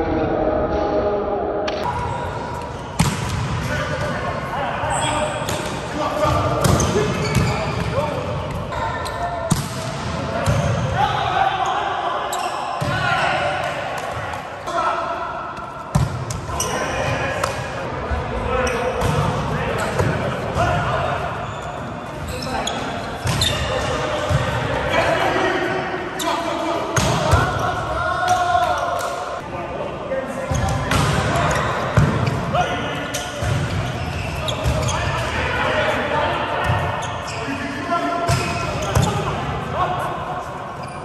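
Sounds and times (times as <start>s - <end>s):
voices in echoing hall: 0.0s - 41.0s.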